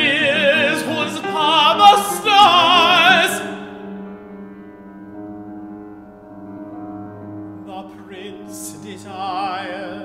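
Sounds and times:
piano playing slow chords: 0:00.0 - 0:10.0.

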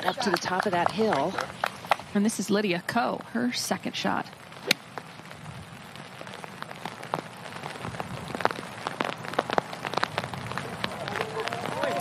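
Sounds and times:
rain pattering: 0:00.0 - 0:12.0.

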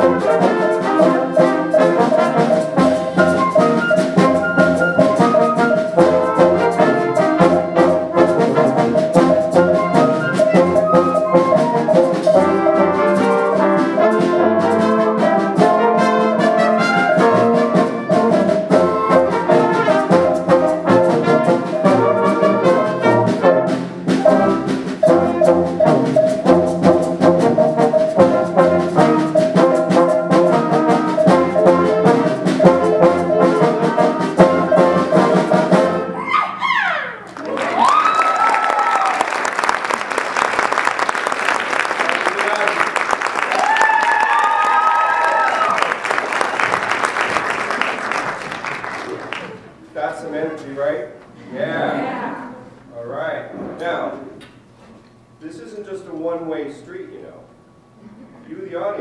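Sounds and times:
concert band playing: 0:00.0 - 0:51.0
people whooping: 0:36.2 - 0:39.6, 0:42.0 - 0:46.2
audience applauding: 0:37.2 - 0:49.8.

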